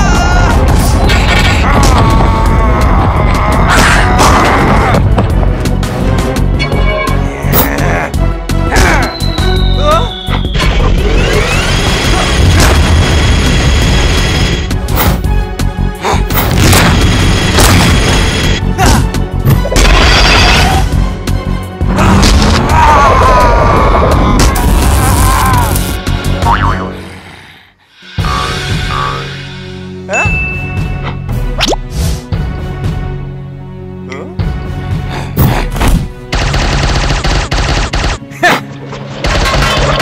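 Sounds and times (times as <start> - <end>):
action background music: 0.0 - 27.1, 27.9 - 40.0.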